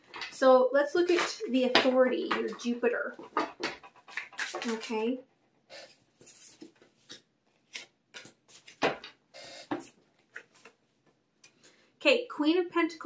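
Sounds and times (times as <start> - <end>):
cards clicking and slapping: 3.4 - 5.0, 7.0 - 9.2.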